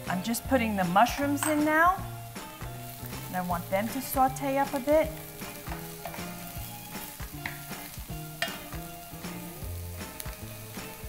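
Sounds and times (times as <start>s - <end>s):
vegetables sizzling in frying pan: 0.0s - 11.0s.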